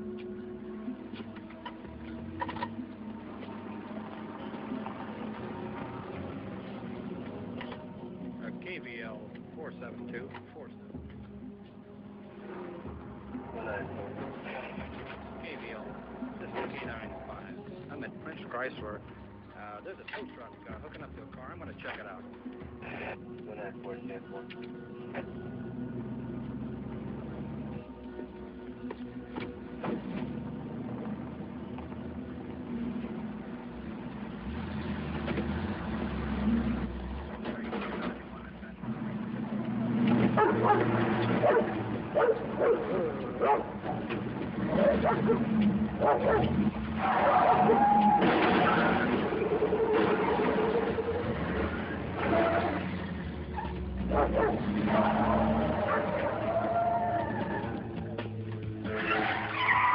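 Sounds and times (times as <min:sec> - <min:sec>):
vehicle engine rumbling: 0:00.0 - 0:59.9.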